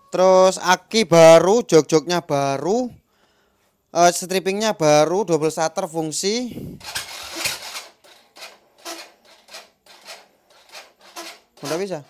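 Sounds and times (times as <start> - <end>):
starter cranking engine slowly: 6.6 - 12.0.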